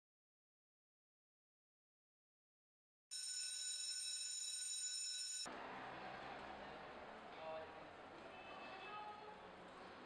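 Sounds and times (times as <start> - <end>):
high-pitched ringing tone: 3.1 - 5.5.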